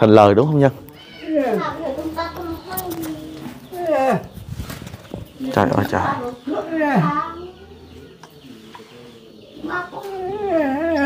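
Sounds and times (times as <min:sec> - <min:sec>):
elderly man wailing: 0:03.7 - 0:04.3, 0:10.1 - 0:11.0.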